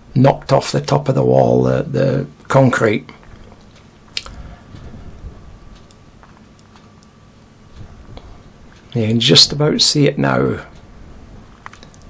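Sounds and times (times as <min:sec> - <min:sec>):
wind rumble on microphone: 0:04.3 - 0:05.8, 0:07.7 - 0:08.5.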